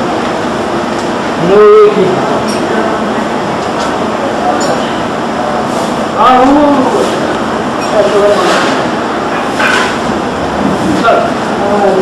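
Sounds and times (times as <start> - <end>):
loud steady rushing noise: 0.0 - 12.0
people's voices: 1.3 - 12.0.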